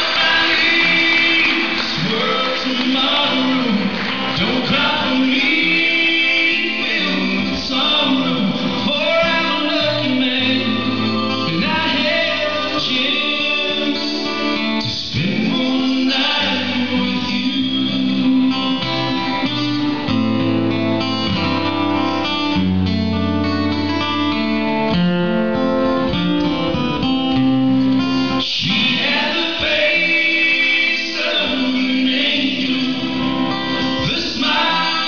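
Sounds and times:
men singing: 0.0s - 19.9s, 28.4s - 35.0s
acoustic guitar: 0.0s - 35.0s.

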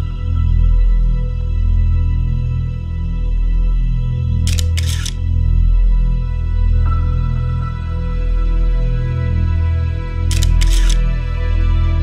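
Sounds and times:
slow sad background music: 0.0s - 12.0s
camera shutter clicks: 4.5s - 5.2s, 10.3s - 11.0s.

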